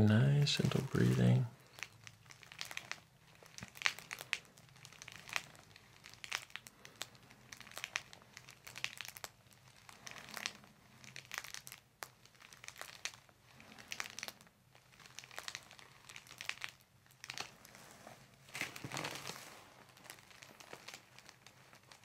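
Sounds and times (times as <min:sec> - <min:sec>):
paper crinkling and rustling: 0:00.0 - 0:22.0.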